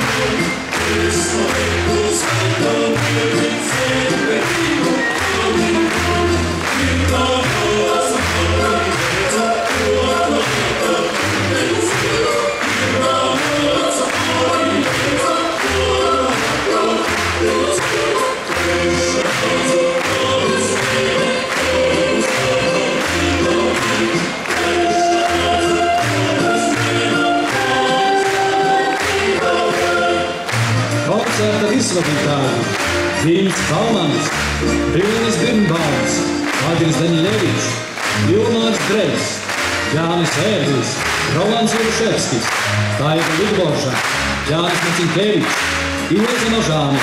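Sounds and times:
choir singing: 0:00.0 - 0:32.6.

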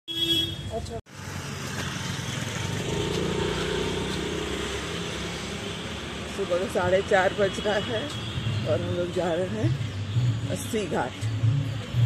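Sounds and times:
vehicle engine and tyre noise: 0:00.2 - 0:12.0.

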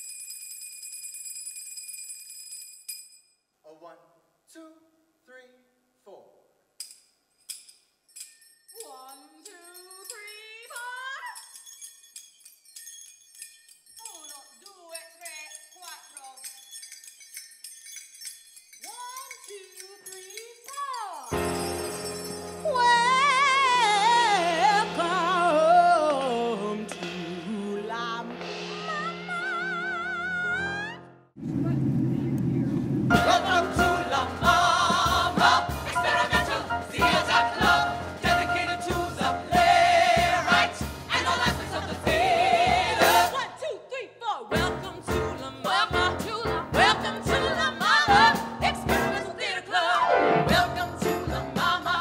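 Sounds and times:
tambourine jingle strikes: 0:00.0 - 0:03.4, 0:06.8 - 0:23.7, 0:33.1 - 0:43.5, 0:50.4 - 0:52.0
person singing: 0:22.7 - 0:31.0, 0:44.5 - 0:52.0
aircraft rumble in flight: 0:31.4 - 0:33.1
voices singing held notes: 0:33.1 - 0:43.7, 0:44.5 - 0:52.0.

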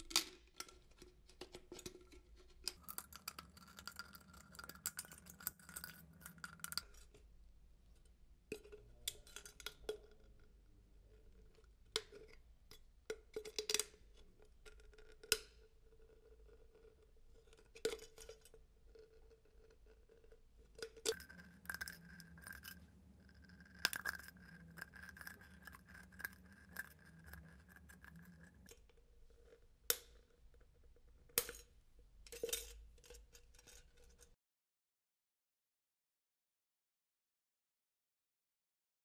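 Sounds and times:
can and pliers clicking and scraping: 0:01.5 - 0:07.2, 0:20.8 - 0:28.8
faint steady hum: 0:15.5 - 0:34.2.

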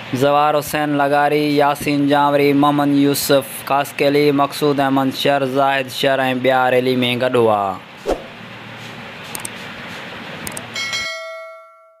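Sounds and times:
steady background noise: 0:00.0 - 0:11.0
bell-like notification chime: 0:10.8 - 0:12.0.

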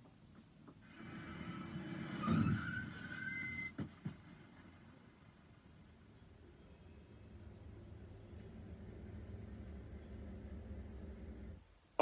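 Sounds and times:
car braking with tyre screech: 0:00.9 - 0:05.0.

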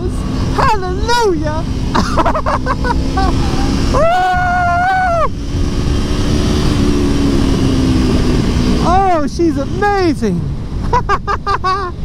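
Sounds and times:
motorcycle engine accelerating: 0:00.0 - 0:11.9
wind rush on microphone: 0:00.0 - 0:12.0
rider whooping: 0:02.1 - 0:05.9.

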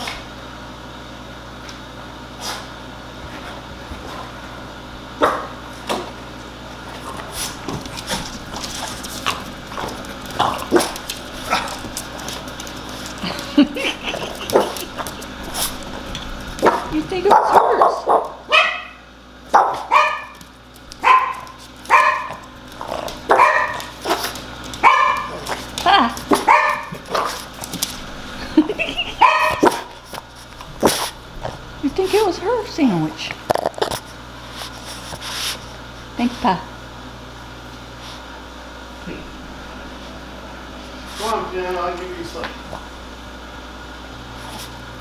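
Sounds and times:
dog barking: 0:16.6 - 0:20.4, 0:21.0 - 0:22.4, 0:23.3 - 0:24.2, 0:24.8 - 0:25.4, 0:26.3 - 0:27.4, 0:29.2 - 0:29.9.

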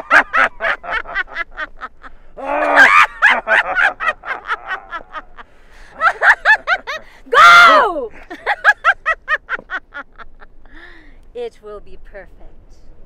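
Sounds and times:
woman cackling laugh: 0:00.0 - 0:05.4, 0:08.1 - 0:10.5.

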